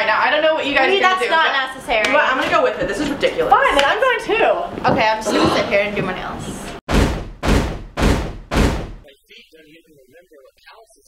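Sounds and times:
heavy booming hits: 6.9s - 9.1s.

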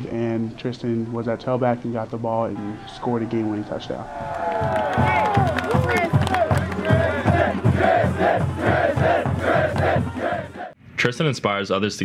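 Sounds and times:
players yelling and cheering: 2.2s - 10.8s
rhythmic chant of calls: 4.2s - 10.8s
steady low beat: 5.0s - 10.7s.

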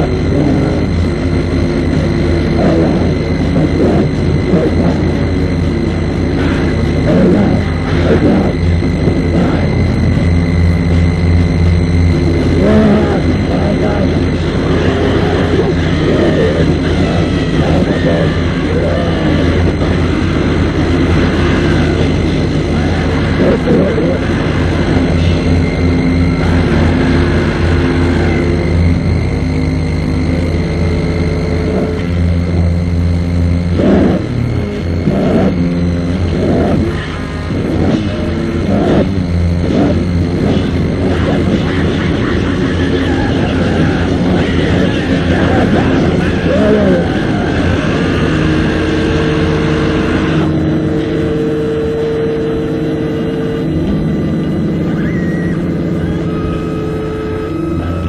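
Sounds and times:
heavily distorted guitars: 0.0s - 58.0s.

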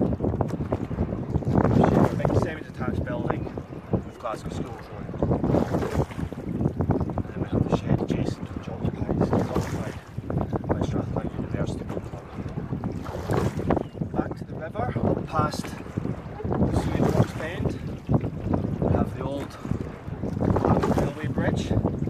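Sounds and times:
water rushing along a hull: 0.0s - 22.0s
wind buffeting microphone: 0.0s - 22.0s.

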